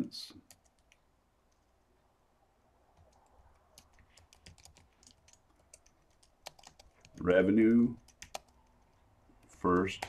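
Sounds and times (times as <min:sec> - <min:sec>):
keyboard typing: 0:00.4 - 0:01.7, 0:03.0 - 0:10.0.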